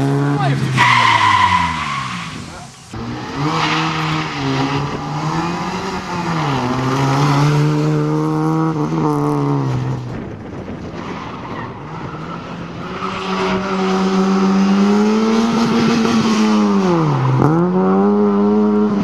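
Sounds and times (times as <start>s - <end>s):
car engine revving hard: 0.0s - 10.0s, 12.0s - 19.0s.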